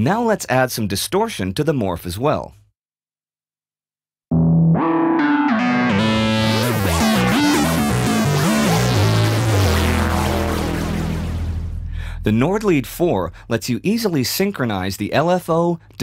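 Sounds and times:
synthesizer riff: 4.3s - 13.6s
synth bass line: 4.3s - 14.0s.

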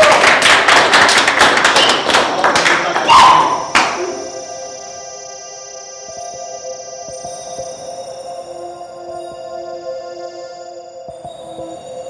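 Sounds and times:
quick claps and knocks: 0.0s - 4.0s
music: 0.0s - 12.0s
held synth chord: 3.5s - 12.0s.

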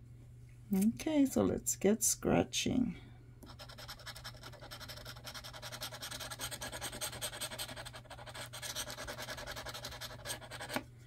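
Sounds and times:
scraping lottery ticket: 3.6s - 10.8s.

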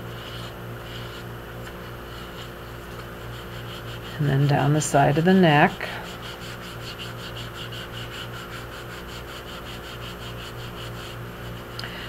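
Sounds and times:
rapid scratching on porcelain: 0.0s - 11.8s
steady low hum: 0.0s - 12.0s.

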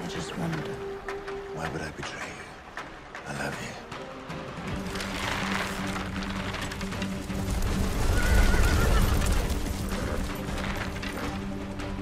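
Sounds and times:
horse whinnying: 7.8s - 11.3s.

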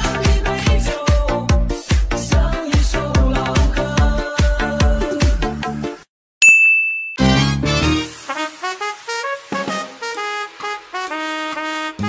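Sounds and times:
dance music: 0.0s - 5.8s
high ding: 6.4s - 7.3s.

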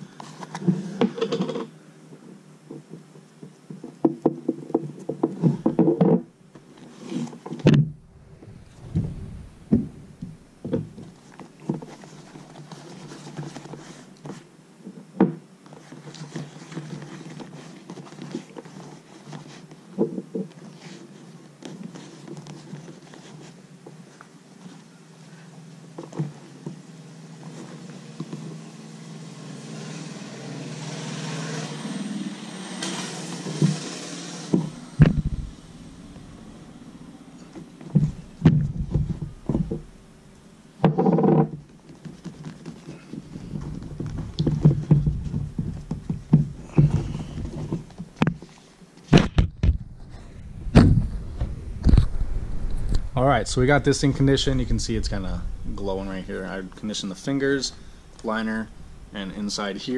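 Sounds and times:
rubbing leather glove: 41.0s - 48.8s.

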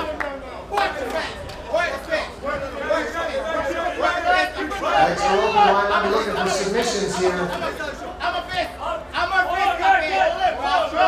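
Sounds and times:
people calling out and talking: 0.0s - 11.0s.

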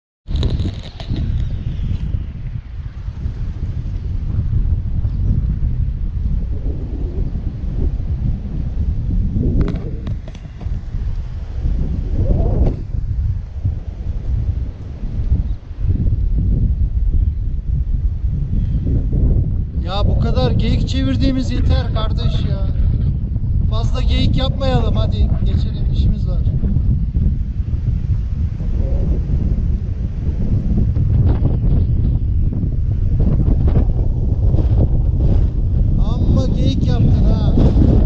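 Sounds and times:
wind buffeting microphone: 0.2s - 38.0s.

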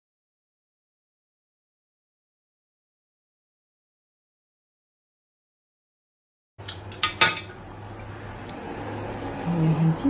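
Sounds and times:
utensils clinking on stone countertop: 6.6s - 7.6s.

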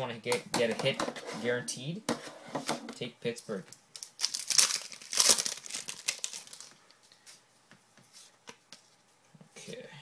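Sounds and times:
foil wrapper crinkling: 3.9s - 6.9s.

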